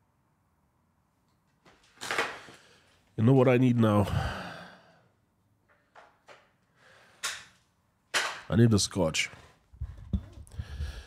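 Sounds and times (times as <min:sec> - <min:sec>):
man sighing: 0:04.0 - 0:05.1
short sharp breath: 0:06.7 - 0:07.4.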